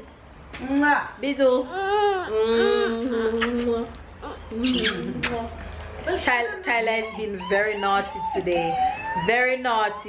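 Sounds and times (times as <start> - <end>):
toddler vocal sound: 1.6 - 5.6.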